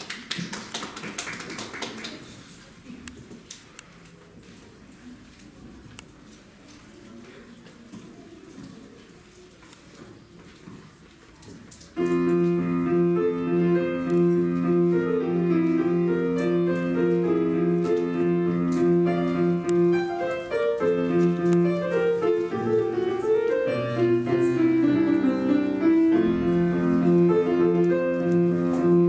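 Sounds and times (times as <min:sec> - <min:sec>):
piano chords: 0:12.0 - 0:29.0.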